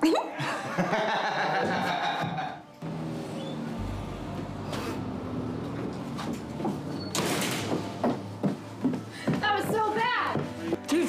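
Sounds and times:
steady low hum: 2.8 - 9.1.

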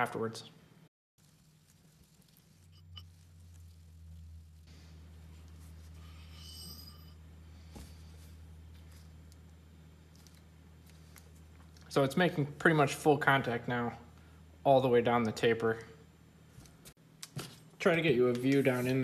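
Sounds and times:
steady low hum: 0.0 - 17.7.

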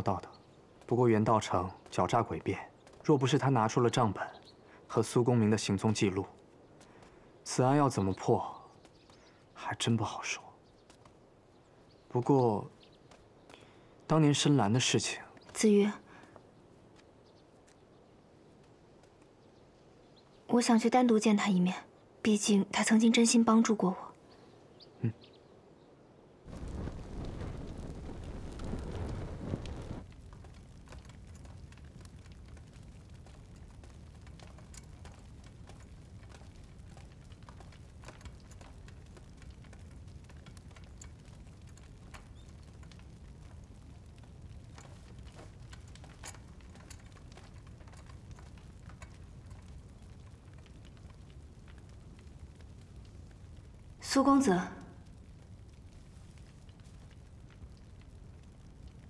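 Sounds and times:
fire crackling: 0.0 - 59.0.

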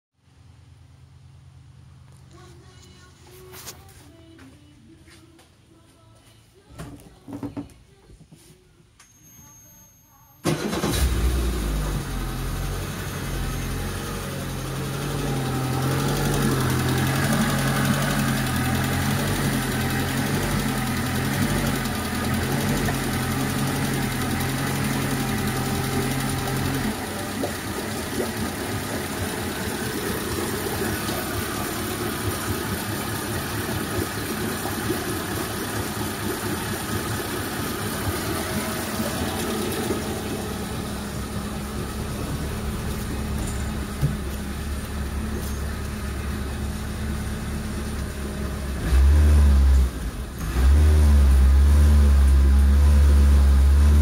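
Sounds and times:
deep low hum: 11.6 - 54.0
outboard engine running: 14.2 - 54.0.

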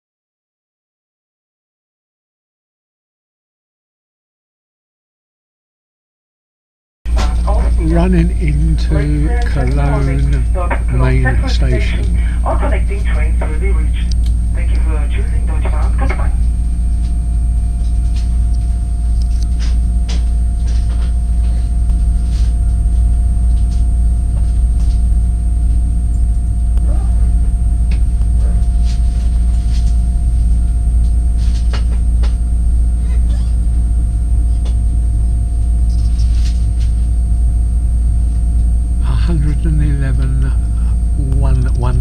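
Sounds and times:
train rumble: 7.1 - 37.2, 39.0 - 42.0
faint steady tones: 7.1 - 42.0.

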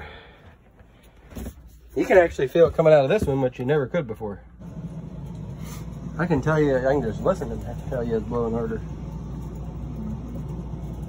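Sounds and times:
air conditioner blowing: 0.0 - 11.0.

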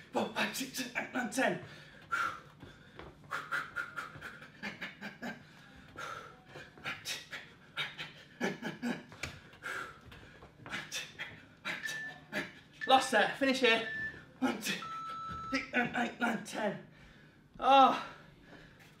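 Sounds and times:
man breathing hard: 1.6 - 11.8, 16.8 - 19.0.

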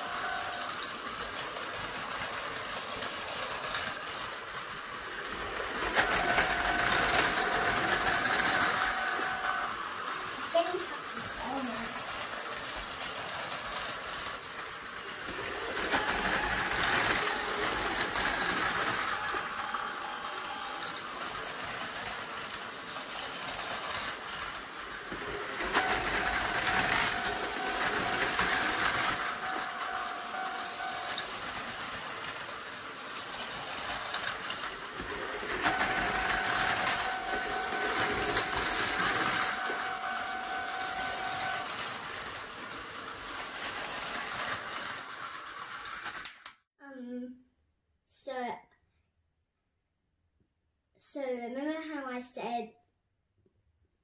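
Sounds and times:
toy train motors whirring: 0.0 - 46.6
toy train wheel clatter: 0.0 - 46.6
toy train whine: 0.0 - 46.6.

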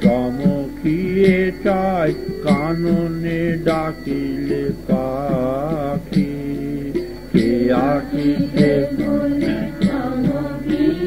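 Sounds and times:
steady percussion beat: 0.0 - 11.0
sung chanting: 0.0 - 11.0.

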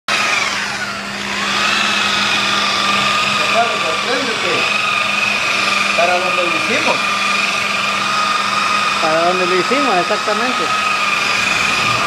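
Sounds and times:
rotary polisher motor whine: 0.1 - 12.0.

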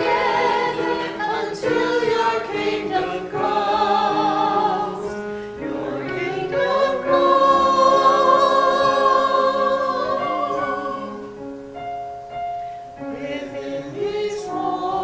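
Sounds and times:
church choir singing: 0.0 - 11.6, 13.0 - 15.0
keyboard accompaniment: 0.0 - 15.0.

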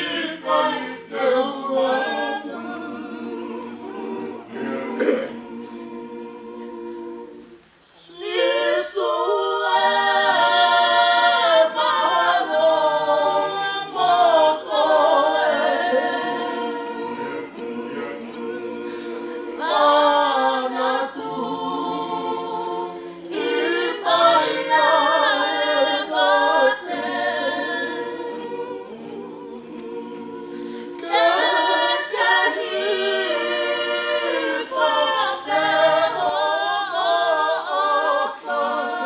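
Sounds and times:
group singing unaccompanied: 0.0 - 39.0.

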